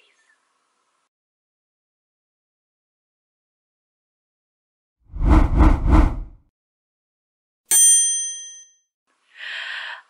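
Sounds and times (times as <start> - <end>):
bell-like ding: 7.7 - 8.8.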